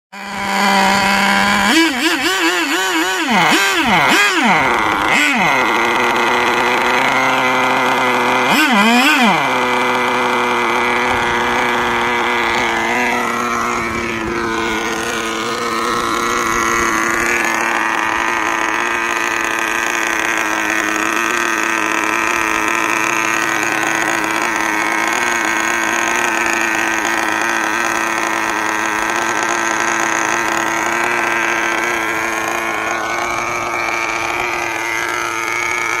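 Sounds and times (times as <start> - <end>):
model boat engine running: 0.1 - 36.0.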